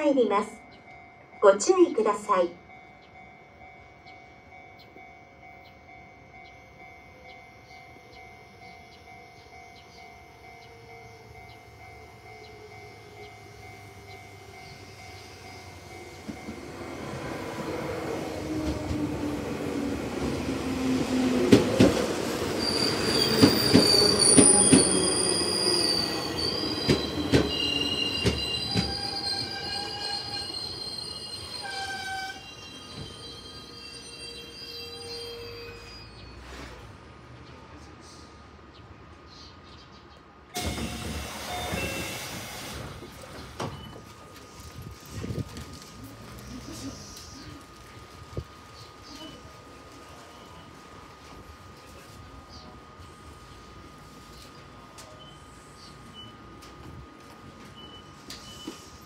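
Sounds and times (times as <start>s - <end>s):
level-crossing alarm ringing: 0.0s - 36.3s, 40.6s - 43.0s, 55.1s - 59.0s
train running hum: 0.2s - 39.3s, 40.2s - 59.0s
high brake squeals: 22.5s - 36.9s, 40.6s - 42.9s, 57.8s - 59.0s.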